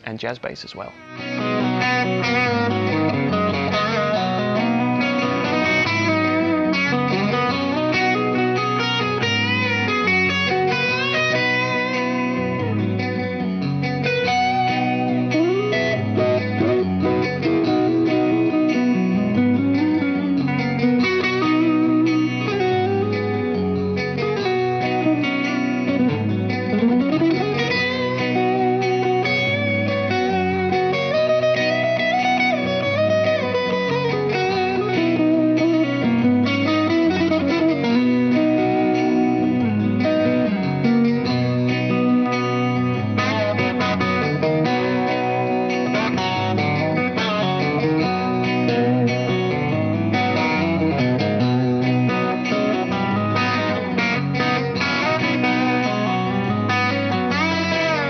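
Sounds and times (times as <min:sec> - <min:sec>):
electric guitar through amplifier: 0:00.0 - 0:58.0.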